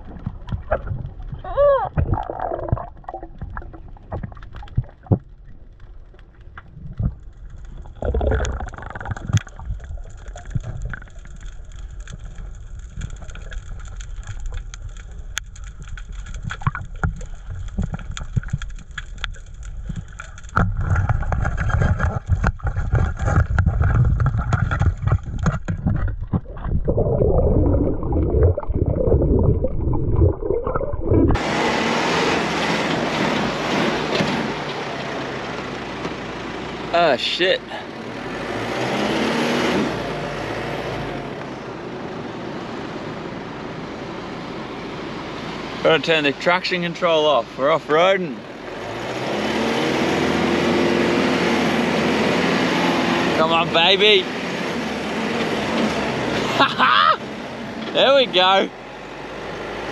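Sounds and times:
low underwater rumble: 0:00.0 - 0:31.4
underwater clicks: 0:00.0 - 0:31.4
muffled underwater water: 0:00.0 - 0:31.6.

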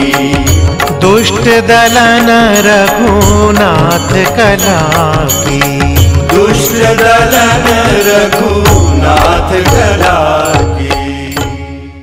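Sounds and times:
devotional song singing: 0:00.0 - 0:12.0
sharp percussion strikes: 0:00.0 - 0:12.0.

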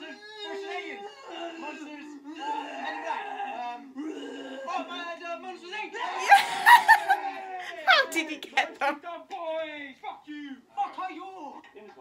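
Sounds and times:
shouting: 0:00.0 - 0:05.1, 0:05.8 - 0:08.1
voices talking and laughing: 0:05.7 - 0:09.0.

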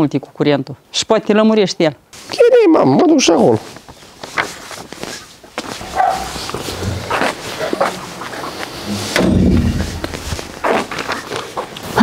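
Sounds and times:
dog barking: 0:05.9 - 0:06.5.

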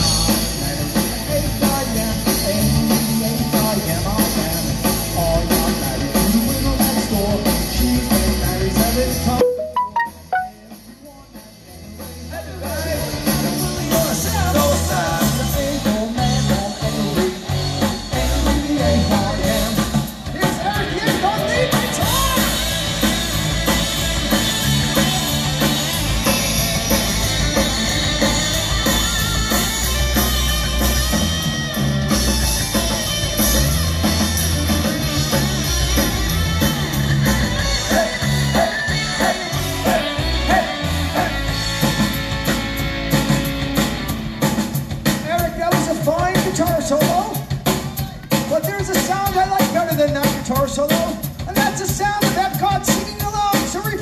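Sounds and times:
live rock band playing: 0:00.0 - 0:54.0.

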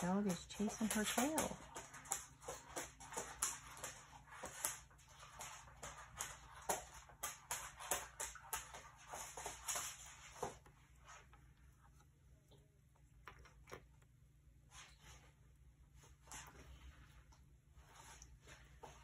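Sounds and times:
dog claws clicking on hard floor: 0:00.0 - 0:11.2.

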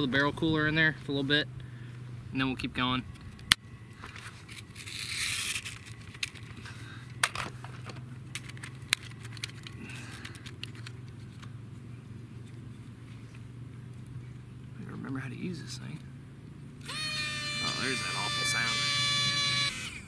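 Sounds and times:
plastic scraping and rustling: 0:04.0 - 0:11.5.

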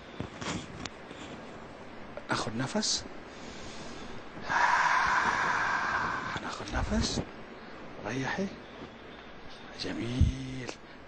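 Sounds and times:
long deep breath: 0:03.3 - 0:06.4.

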